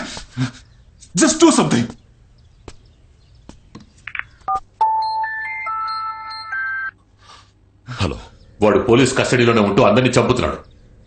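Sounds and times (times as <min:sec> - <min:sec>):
mobile phone ringtone: 0:04.5 - 0:07.0.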